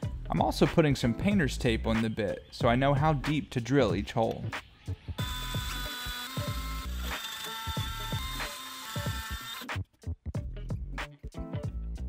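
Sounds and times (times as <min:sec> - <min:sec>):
background music with a beat: 0:00.0 - 0:03.4, 0:04.2 - 0:12.0
cordless drill boring into wood: 0:05.2 - 0:09.7.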